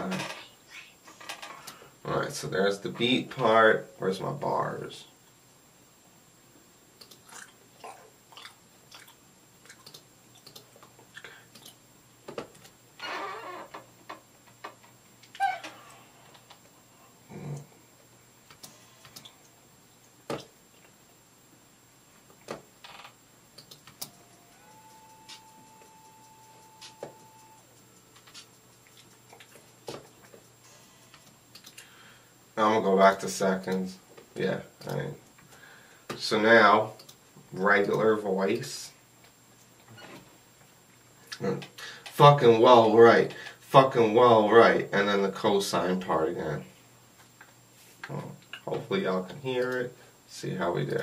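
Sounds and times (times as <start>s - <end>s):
computer clicks and taps: 23.6s - 30.5s
faint steady tone: 24.0s - 38.5s.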